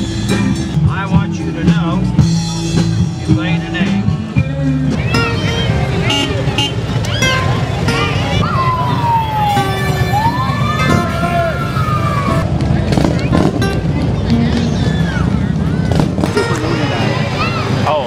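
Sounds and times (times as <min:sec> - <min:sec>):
crowd voices: 0:00.0 - 0:18.0
motorcycle engines rumbling: 0:00.0 - 0:18.0
police car siren wailing: 0:07.0 - 0:12.4.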